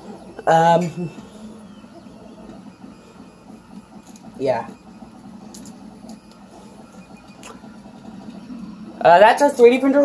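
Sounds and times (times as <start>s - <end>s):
cooling fans humming: 0.0s - 10.0s.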